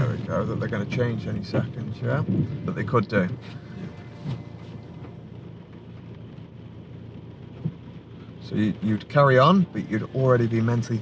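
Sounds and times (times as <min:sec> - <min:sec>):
car engine idling rumble: 0:00.0 - 0:11.0.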